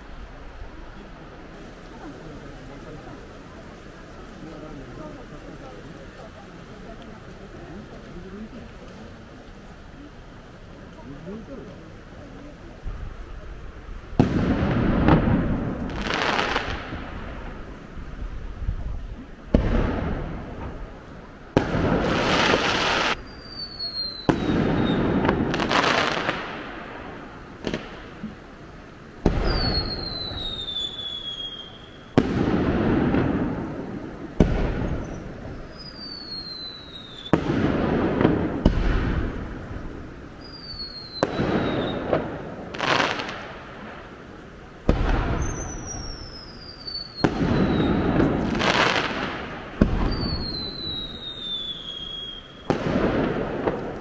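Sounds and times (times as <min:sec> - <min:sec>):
falling firework whistles: 0:21.6 - 0:26.6, 0:29.3 - 0:32.6, 0:34.6 - 0:39.4, 0:40.4 - 0:43.4, 0:44.9 - 0:54.0.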